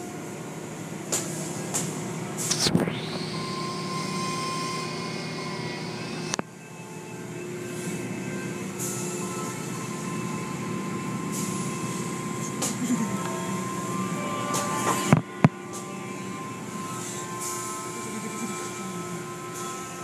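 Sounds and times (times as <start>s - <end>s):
machinery hum: 0.0s - 20.0s.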